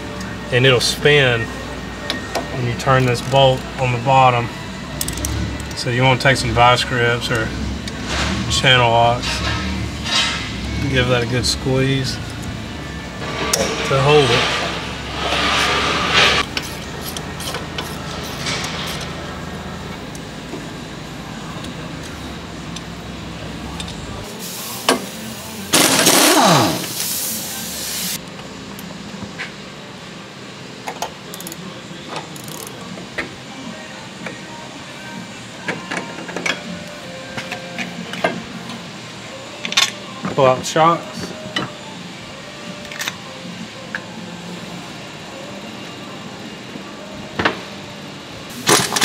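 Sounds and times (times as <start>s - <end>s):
background music: 0.0s - 31.6s
air impact wrench: 13.2s - 19.0s, 25.7s - 28.2s.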